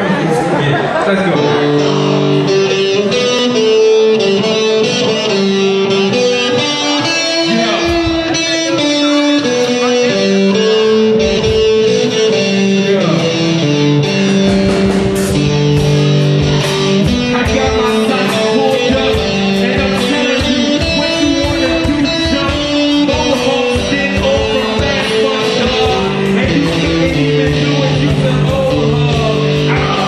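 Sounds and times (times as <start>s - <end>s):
electric guitar melody: 0.0s - 30.0s
drum cymbal hits: 14.2s - 28.7s.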